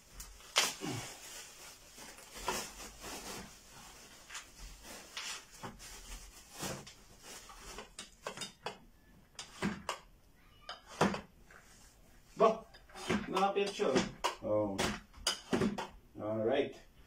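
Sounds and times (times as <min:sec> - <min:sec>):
plastic wrapping rustling: 0:00.0 - 0:08.4.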